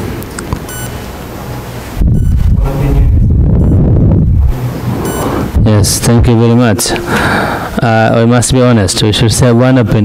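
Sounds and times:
wind rumble on microphone: 0:02.0 - 0:05.8.

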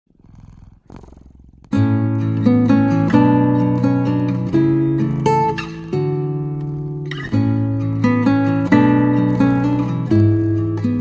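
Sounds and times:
cat purring: 0:00.1 - 0:08.9.

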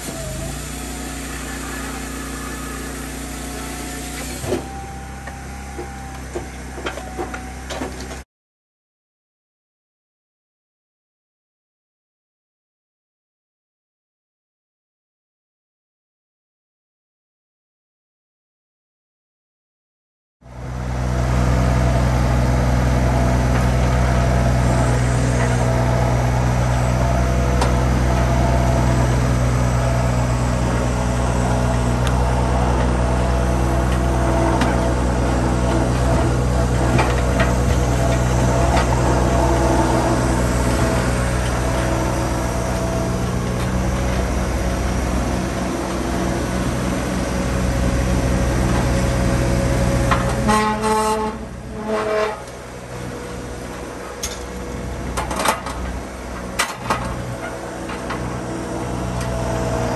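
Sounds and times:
loader engine running: 0:00.0 - 0:08.2, 0:20.4 - 0:59.9.

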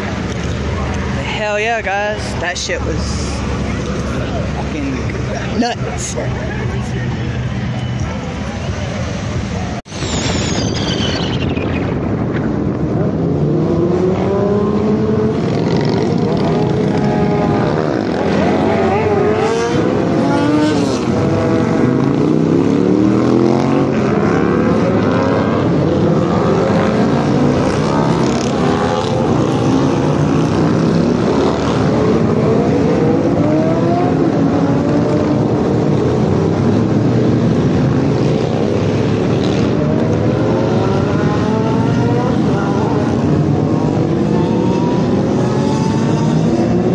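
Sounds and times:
car and motorcycle engines revving: 0:00.0 - 0:46.9.

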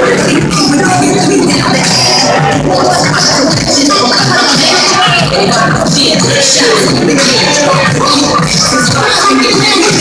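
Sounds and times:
live hip-hop music over sound system: 0:00.0 - 0:10.0.

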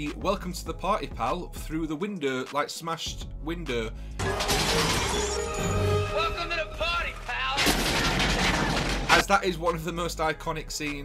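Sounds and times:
heavy gunfire: 0:07.6 - 0:09.3.

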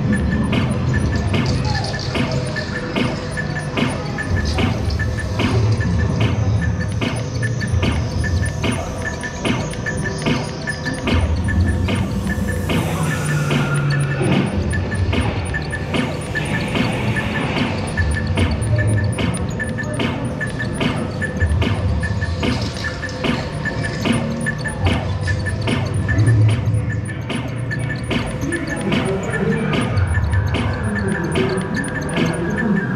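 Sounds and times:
amusement ride background music: 0:00.0 - 0:32.9
electronic beeps and clicks: 0:00.0 - 0:32.9.

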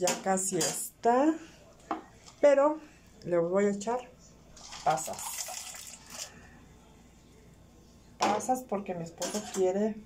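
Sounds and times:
room hum: 0:00.1 - 0:10.0.

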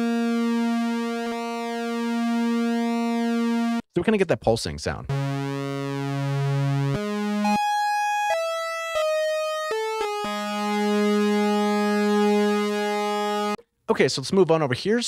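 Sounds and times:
synthesizer wavering square wave: 0:00.0 - 0:03.8, 0:05.1 - 0:13.6.

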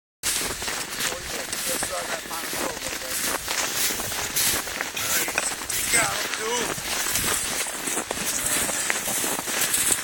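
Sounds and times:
footsteps crunching through snow: 0:00.2 - 0:10.0.

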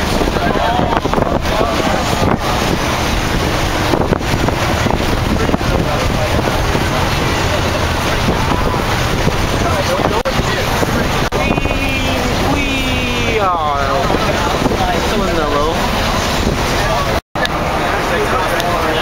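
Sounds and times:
bus engine and road noise: 0:00.0 - 0:19.0
wind rushing through windows: 0:00.0 - 0:19.0
person calling out: 0:11.4 - 0:14.0.

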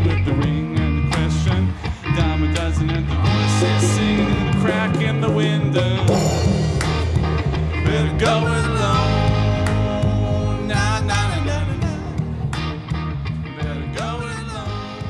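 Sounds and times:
live rock band playing: 0:00.0 - 0:15.0
cymbal crash: 0:06.1 - 0:08.6.

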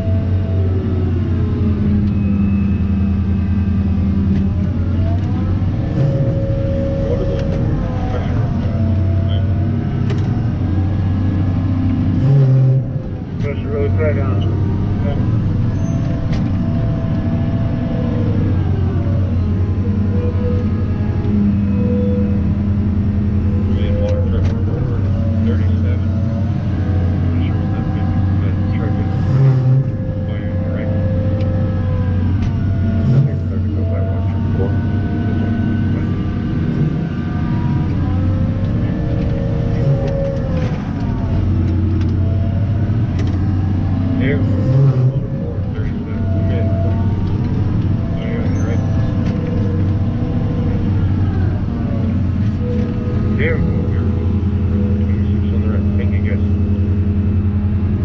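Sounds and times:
diesel engine running: 0:00.0 - 0:58.0.

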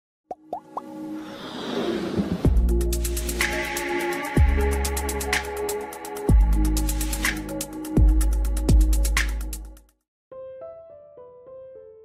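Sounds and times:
quick pops rising in pitch: 0:00.3 - 0:00.9
electronic music: 0:02.5 - 0:09.8.

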